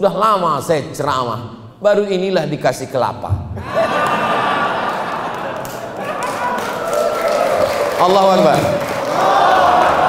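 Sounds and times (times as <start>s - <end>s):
audience laughing: 3.6s - 7.6s
audience clapping: 3.9s - 10.0s.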